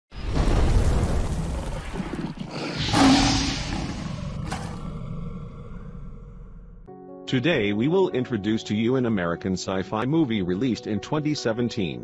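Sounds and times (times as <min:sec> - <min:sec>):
animal roaring: 0:01.5 - 0:06.9.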